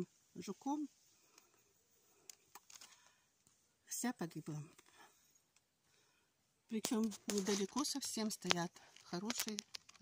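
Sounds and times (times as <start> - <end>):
person speaking: 0.0 - 2.8, 3.8 - 5.2, 6.7 - 10.0
soft rustles: 6.8 - 10.0.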